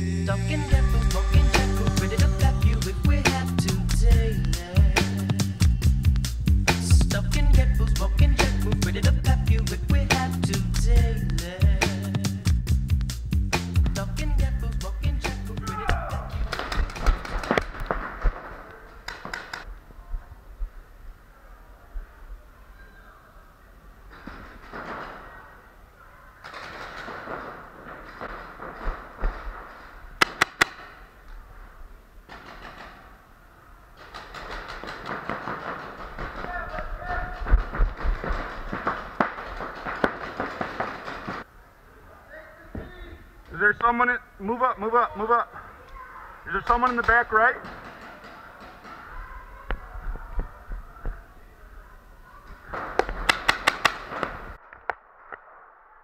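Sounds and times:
indistinct shouting: 15.5 - 16.6, 36.2 - 37.7
paintball markers firing: 15.9 - 19.7, 26.4 - 31.1, 34.0 - 41.5, 52.7 - 55.0.

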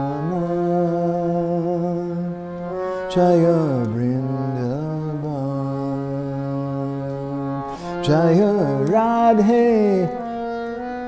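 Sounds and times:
man singing a chant: 0.0 - 2.4, 3.0 - 10.4
harmonium chord: 0.0 - 11.0.

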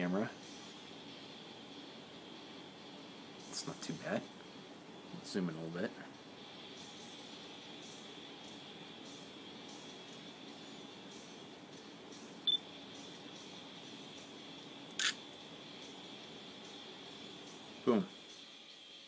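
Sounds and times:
faint hiss with thin whine: 0.0 - 19.0
camera shutter click: 15.0 - 15.2.

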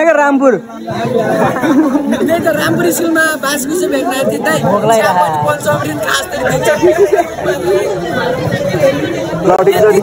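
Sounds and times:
young men talking: 0.0 - 10.0.

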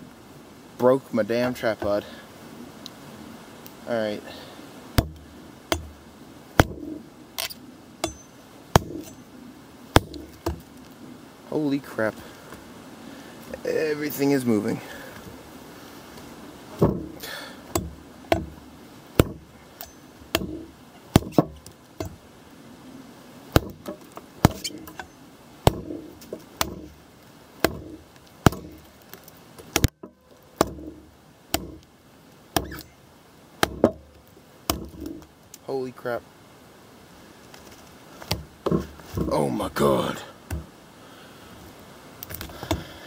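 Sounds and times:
knife chopping into log: 5.0 - 6.0, 6.6 - 8.2, 8.8 - 9.2, 9.9 - 10.7, 16.8 - 18.6, 19.2 - 22.2, 23.5 - 25.1, 25.7 - 27.0, 27.6 - 28.8, 30.6 - 31.8, 32.6 - 32.9.

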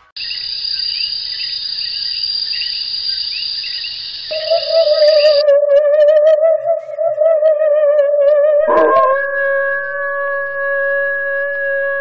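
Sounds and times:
crickets trilling: 0.2 - 5.5
faint chirps: 2.6 - 5.5, 8.6 - 12.0.

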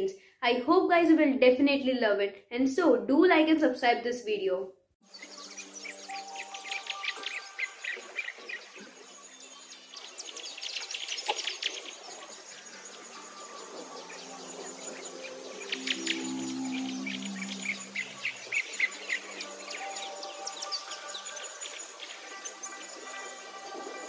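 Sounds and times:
small birds chirping: 5.0 - 24.0
soft music: 5.0 - 24.0.

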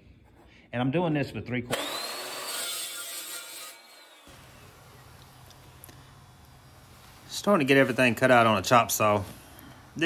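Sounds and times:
chop saw cutting steel: 1.7 - 4.8.

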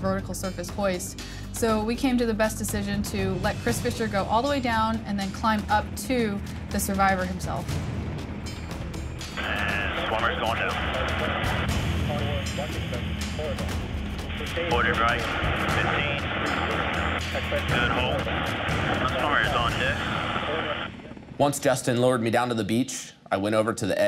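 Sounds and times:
steady low drone: 0.0 - 22.6
background music: 0.0 - 24.0
voices over radio intercom: 9.4 - 13.6, 14.2 - 21.2.

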